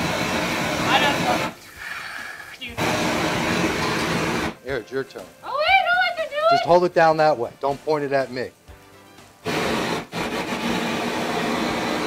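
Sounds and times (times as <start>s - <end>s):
blowtorch flame hissing: 0.0s - 12.0s.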